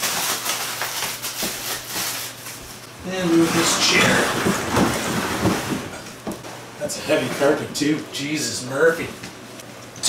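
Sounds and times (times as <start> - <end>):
rustling: 0.0 - 6.6.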